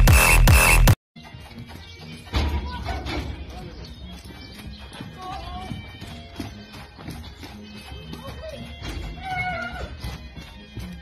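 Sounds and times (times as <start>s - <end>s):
background music with bass beat: 0.0s - 1.0s.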